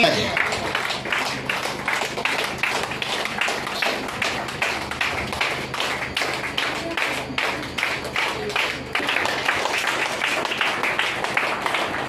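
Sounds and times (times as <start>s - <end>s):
group clapping in rhythm: 0.0s - 12.0s
low steady hum: 0.0s - 12.0s.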